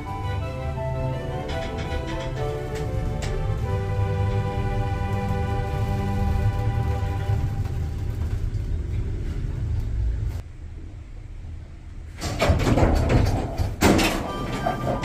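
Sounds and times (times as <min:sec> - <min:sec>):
clunks and rattles: 0:00.0 - 0:10.4, 0:12.1 - 0:15.0
low rumble: 0:00.0 - 0:12.1
elevator doors sliding: 0:00.0 - 0:15.0.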